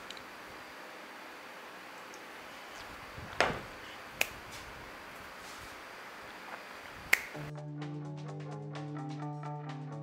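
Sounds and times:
finger snap: 4.2s - 4.4s, 7.1s - 7.5s
background music with plucked notes: 7.4s - 10.0s.

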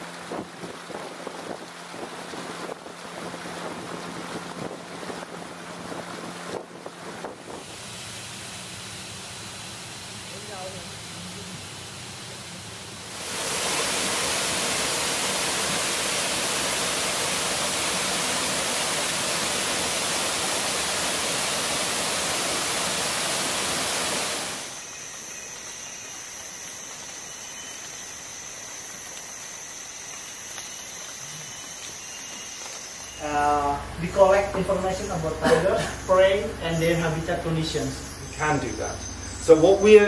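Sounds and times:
forest ambience hiss: 0.0s - 40.0s
waterfall rushing: 7.0s - 24.9s
thin high steady tones: 7.8s - 40.0s.

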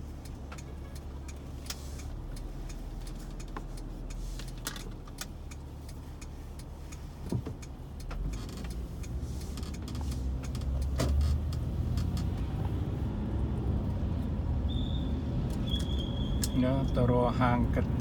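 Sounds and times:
car engine rumble: 0.0s - 18.0s
road noise: 0.0s - 18.0s
light clicks and rattles: 0.2s - 13.0s.

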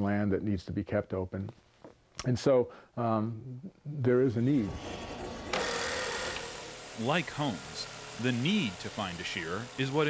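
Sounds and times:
electric shearing handpiece running: 4.5s - 10.0s.

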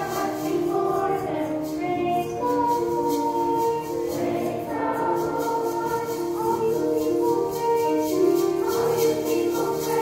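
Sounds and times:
accompaniment with light high beat: 0.0s - 10.0s
children's choir singing: 0.0s - 10.0s.

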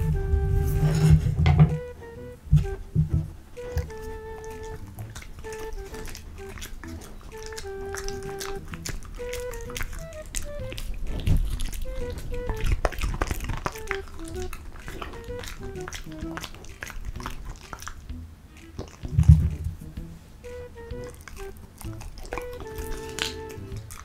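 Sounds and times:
background music plucked melody: 0.0s - 24.0s
dog chewing crunchy vegetable: 3.6s - 24.0s.

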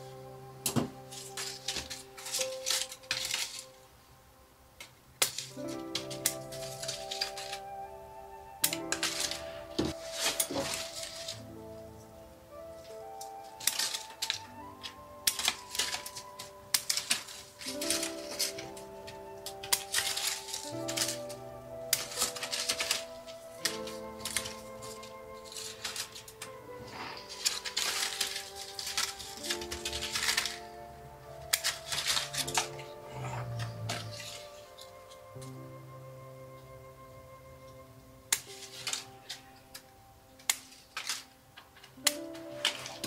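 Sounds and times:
background music: 0.0s - 43.0s
scissors snipping: 13.2s - 30.7s, 31.4s - 35.3s.

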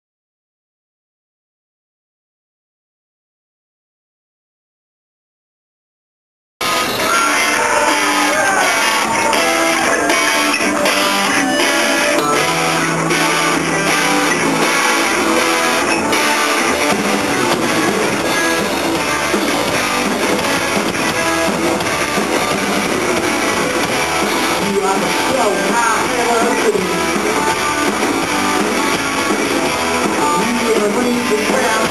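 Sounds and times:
live rock band playing: 6.6s - 31.9s.

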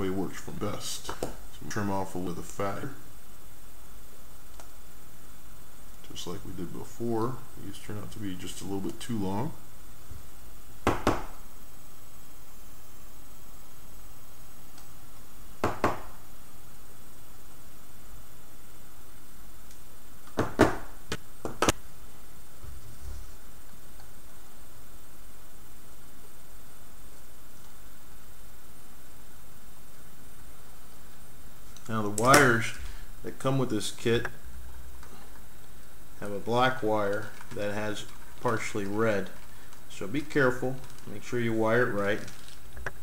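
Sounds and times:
steady background hiss: 0.0s - 43.0s
wire and tools clicking: 31.7s - 32.8s.

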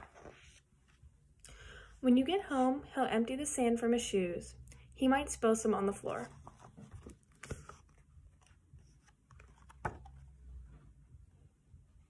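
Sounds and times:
paper rustling: 0.0s - 1.0s, 6.2s - 10.3s
light knocks on book: 9.7s - 10.2s.

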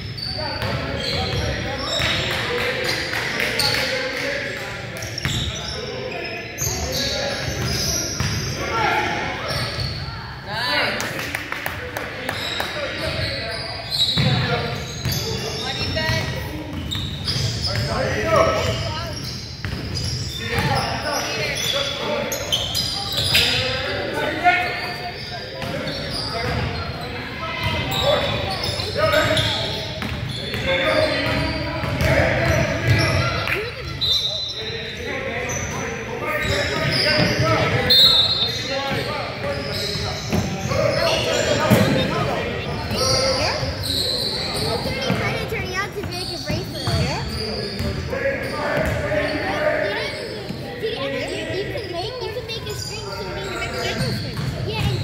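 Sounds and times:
basketball bouncing on hardwood: 54.4s - 55.0s.

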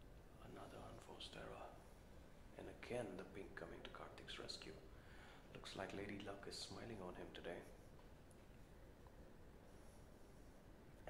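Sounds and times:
soft whispered voices: 0.2s - 11.0s.

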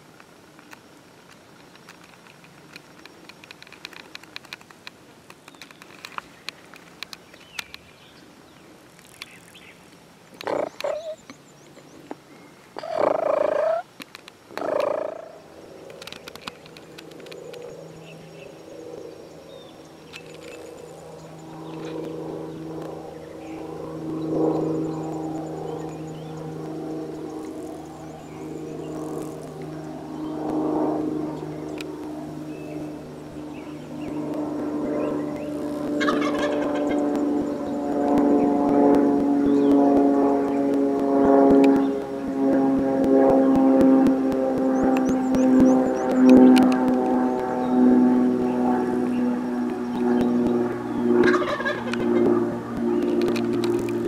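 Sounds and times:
turkey gobbling: 12.8s - 13.8s, 36.0s - 36.9s, 51.2s - 52.0s.

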